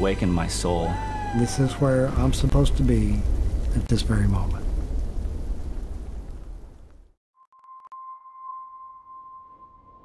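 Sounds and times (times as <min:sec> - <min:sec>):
low rumbling soundtrack: 0:00.0 - 0:07.1.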